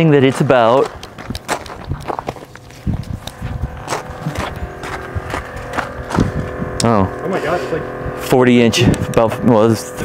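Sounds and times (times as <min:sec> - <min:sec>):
footsteps on gravel: 0:00.0 - 0:06.7.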